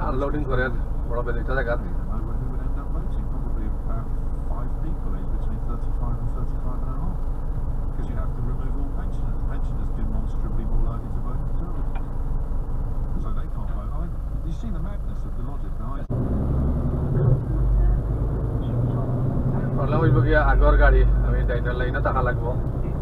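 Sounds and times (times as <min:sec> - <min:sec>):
diesel engine idling: 0:00.0 - 0:16.2.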